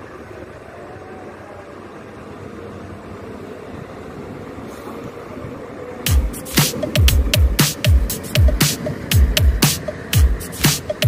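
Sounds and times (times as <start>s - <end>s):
track maintenance machines running: 0.0s - 11.0s.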